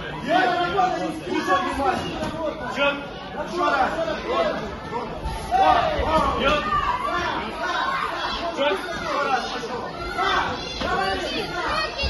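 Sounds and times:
spectators chattering and shouting: 0.0 - 12.0.

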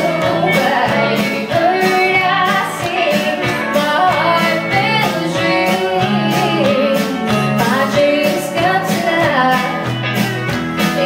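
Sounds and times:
woman singing: 0.0 - 10.0
country pop band playing: 0.0 - 11.0.

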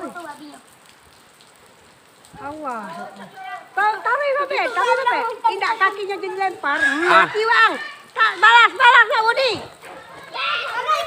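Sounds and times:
light rain hiss: 0.0 - 11.0.

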